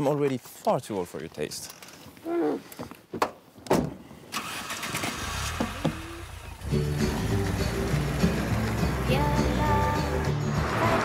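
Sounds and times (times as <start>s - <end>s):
car engine starting and running: 4.3s - 11.0s
song playing: 6.6s - 11.0s.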